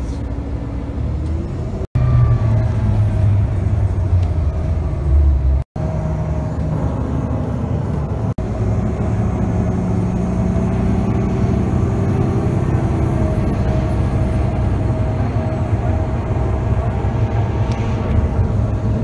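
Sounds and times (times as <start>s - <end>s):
bus engine running: 0.0s - 19.0s
road and traffic noise: 0.0s - 19.0s.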